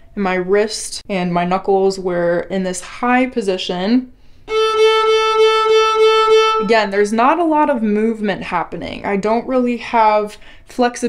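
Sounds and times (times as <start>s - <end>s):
violin playing long bowed note: 4.5s - 6.7s.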